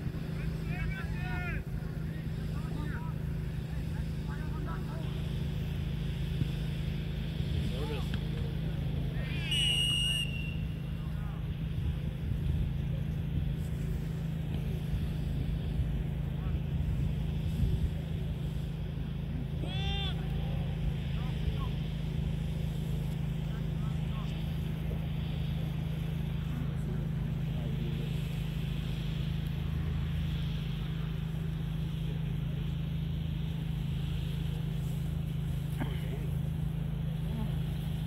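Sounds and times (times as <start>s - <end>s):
distant voices: 0.0s - 38.0s
steady low drone: 0.0s - 38.0s
loud shout: 9.2s - 10.5s, 19.6s - 20.7s.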